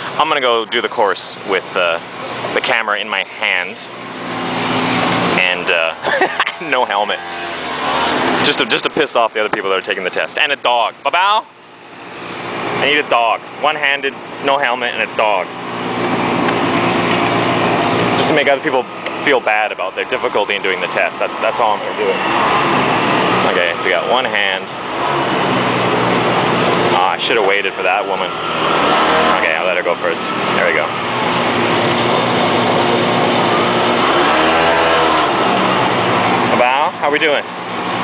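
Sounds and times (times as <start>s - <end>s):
scooter engine running: 3.9s - 9.6s, 14.4s - 38.0s.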